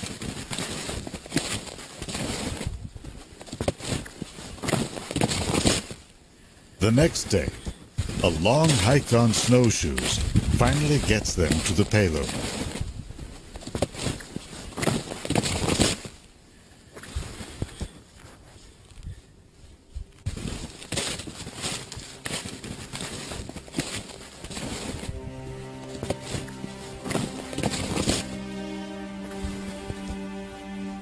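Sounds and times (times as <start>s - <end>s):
footsteps crunching in snow: 0.0s - 6.0s, 8.0s - 16.2s, 20.1s - 31.0s
music with held chords: 21.8s - 31.0s.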